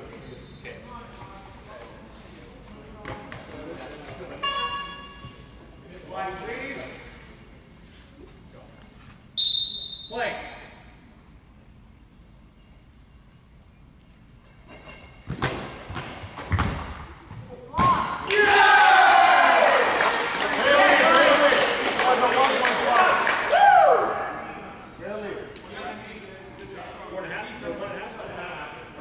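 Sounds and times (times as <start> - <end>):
voices shouting and cheering: 17.8 - 24.8.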